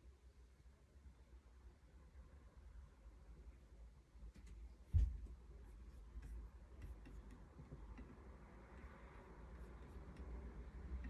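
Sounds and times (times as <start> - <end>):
low thump: 4.9 - 5.3.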